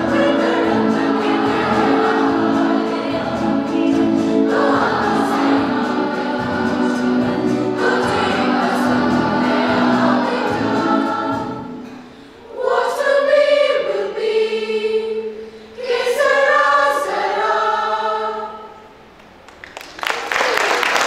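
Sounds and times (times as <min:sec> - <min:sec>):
children's choir singing: 0:00.0 - 0:19.2.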